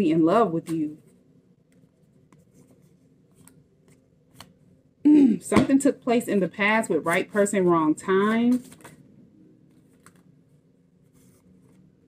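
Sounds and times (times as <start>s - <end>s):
cards shuffling: 0.6s - 4.6s, 7.0s - 9.0s, 9.7s - 10.4s.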